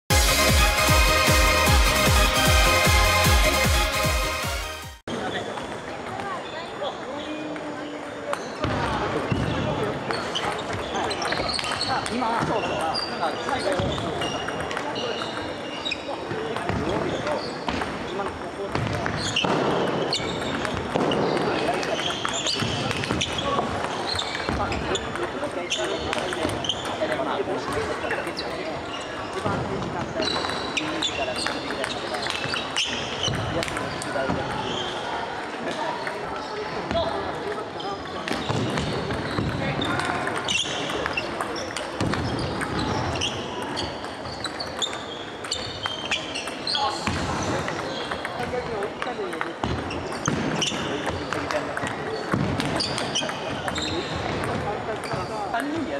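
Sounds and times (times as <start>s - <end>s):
people talking: 5.1s - 19.6s, 20.3s - 44.1s, 45.5s - 55.9s.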